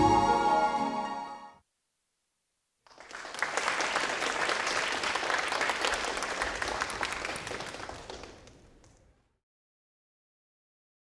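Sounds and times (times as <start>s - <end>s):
audience applauding: 2.9s - 9.2s.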